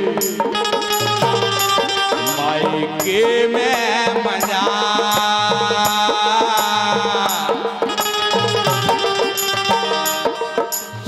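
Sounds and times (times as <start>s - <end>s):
harmonium tones: 0.0s - 11.0s
man singing: 0.0s - 11.0s
percussion beat: 0.0s - 11.0s.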